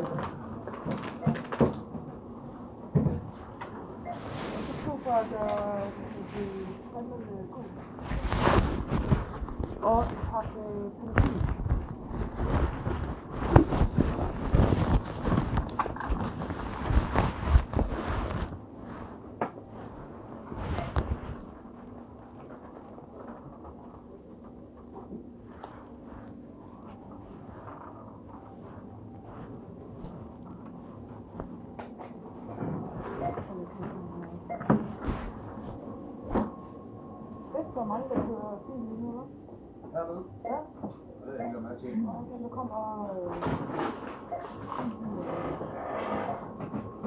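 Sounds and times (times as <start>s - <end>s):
loud rustling and rubbing: 7.9s - 21.6s.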